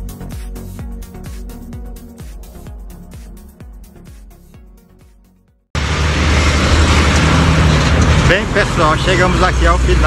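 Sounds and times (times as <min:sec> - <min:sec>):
road traffic rumble: 0:05.8 - 0:10.0.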